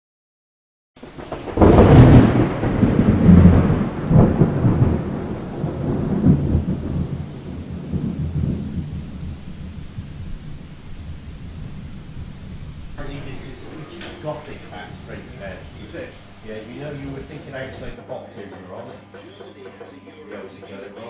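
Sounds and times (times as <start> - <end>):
deep rolling thunder rumble: 1.0 - 18.0.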